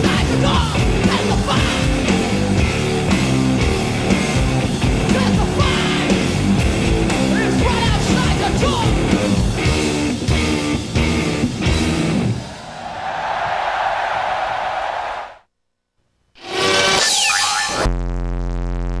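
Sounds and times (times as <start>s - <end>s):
rock band playing: 0.0s - 12.6s.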